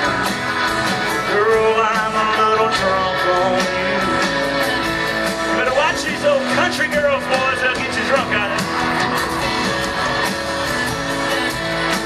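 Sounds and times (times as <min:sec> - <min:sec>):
guitar lead line bending: 0:00.0 - 0:12.0
live country band playing: 0:00.0 - 0:12.0.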